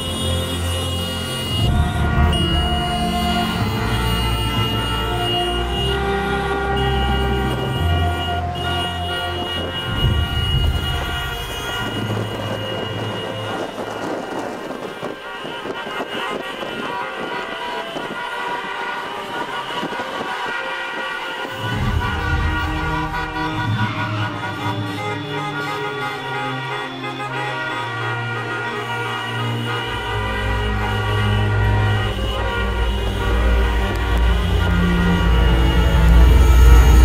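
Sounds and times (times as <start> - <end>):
car horns honking: 0.0 - 37.0
low traffic rumble: 0.0 - 37.0.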